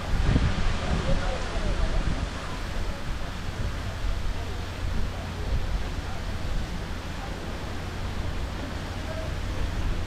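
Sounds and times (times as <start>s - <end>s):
strong wind buffeting microphone: 0.0s - 10.0s.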